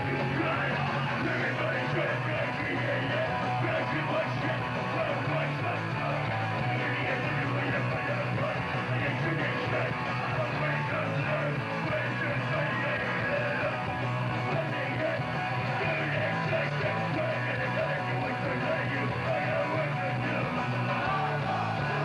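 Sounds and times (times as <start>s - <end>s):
punk band playing live: 0.0s - 22.0s.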